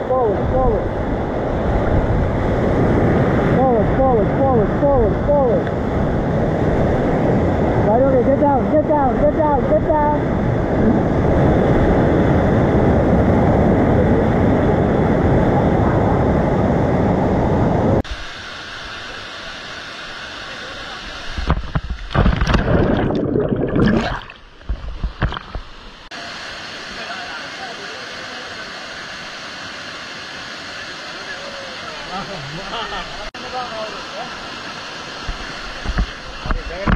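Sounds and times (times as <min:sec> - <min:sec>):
rocky stream cascade: 0:18.1 - 0:36.9
water splashing: 0:21.3 - 0:26.1.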